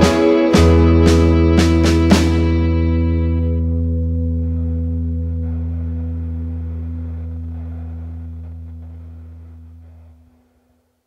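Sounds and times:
guitar chord ringing out: 0.0s - 10.3s.

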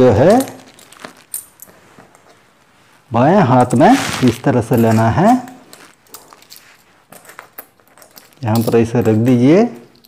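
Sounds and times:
coins clinking together: 4.5s - 10.0s.

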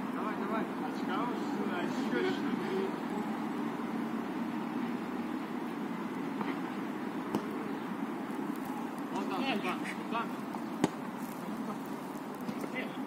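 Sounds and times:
football being kicked: 7.3s - 7.6s, 10.8s - 11.1s.

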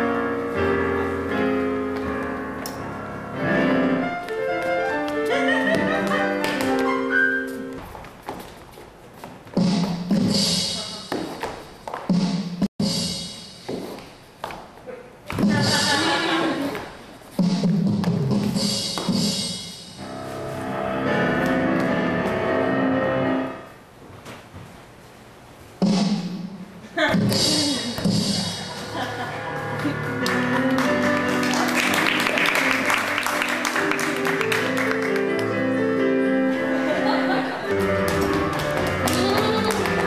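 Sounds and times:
piano-led music: 0.0s - 8.0s, 20.0s - 23.8s, 28.7s - 40.0s.

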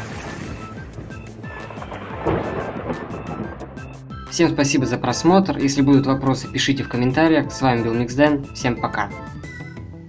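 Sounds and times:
rain: 0.0s - 3.8s
thunder rumble: 0.0s - 5.3s
music: 0.0s - 10.0s.

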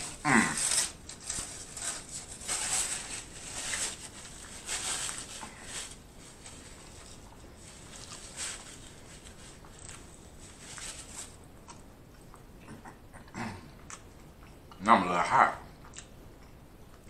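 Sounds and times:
person humming mmm: 0.0s - 0.9s
close chewing of food: 5.9s - 14.8s.

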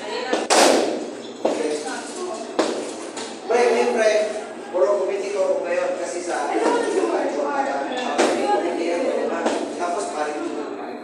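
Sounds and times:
children chattering: 0.0s - 11.0s
sharp smacks: 0.4s - 1.1s.

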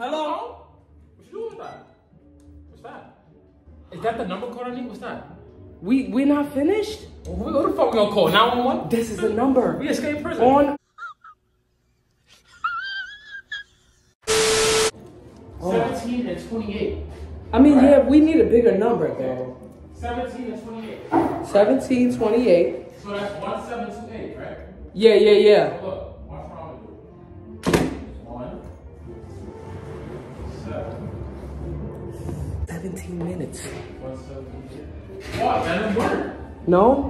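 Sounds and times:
faint background music: 0.0s - 10.8s, 14.9s - 37.0s
loud harsh buzz: 14.2s - 14.9s.

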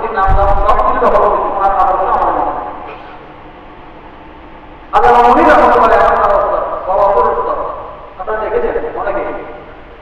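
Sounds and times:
man speaking over amplification: 0.0s - 2.9s, 4.9s - 9.7s
room and sound system noise: 0.0s - 10.0s.

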